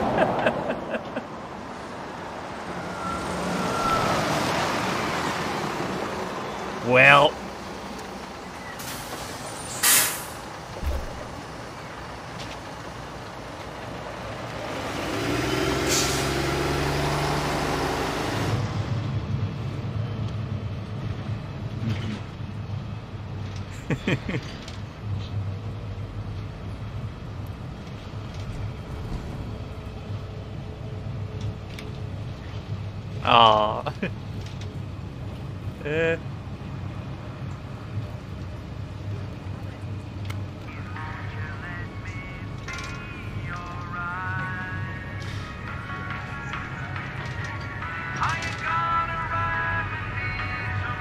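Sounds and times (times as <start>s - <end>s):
bus engine: 0.0s - 51.0s
compressed air hiss: 9.7s - 10.4s.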